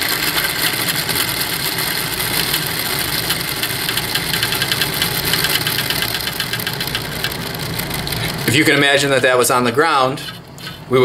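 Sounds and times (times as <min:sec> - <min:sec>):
wheels spinning with whirring rattle: 0:00.0 - 0:11.0.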